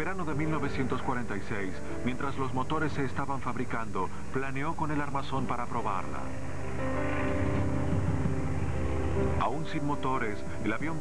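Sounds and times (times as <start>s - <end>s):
sustained musical drone: 0.0s - 11.0s
aircraft rumble in flight: 6.2s - 9.6s.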